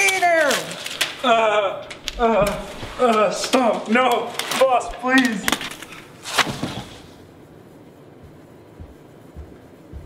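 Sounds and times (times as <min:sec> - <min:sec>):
footsteps on carpet: 0:08.1 - 0:10.0.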